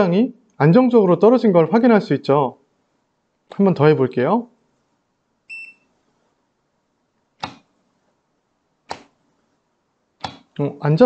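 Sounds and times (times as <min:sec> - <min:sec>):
multimeter key beep: 0:05.5 - 0:05.8.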